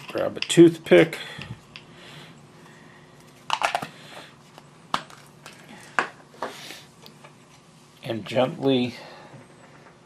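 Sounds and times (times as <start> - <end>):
handling small items on a workbench: 3.2 - 7.6.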